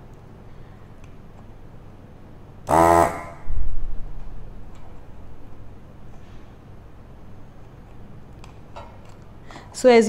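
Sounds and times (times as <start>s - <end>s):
desoldering pump buzzing: 2.6s - 3.6s.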